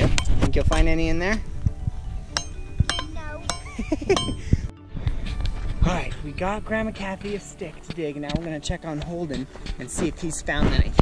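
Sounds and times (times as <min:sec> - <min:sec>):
rock hammer striking rock: 0:02.4 - 0:04.4.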